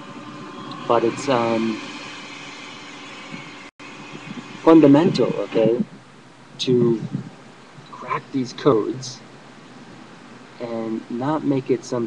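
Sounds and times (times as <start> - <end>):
background hum and hiss: 0.0 - 12.0
speech: 0.9 - 1.8, 4.7 - 5.9, 6.6 - 7.3, 7.9 - 9.2, 10.6 - 12.0.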